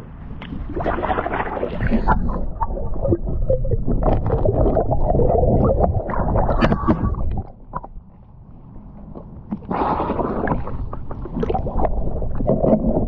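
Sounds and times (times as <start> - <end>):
water sloshing and gurgling: 0.0 - 8.6, 9.3 - 13.0.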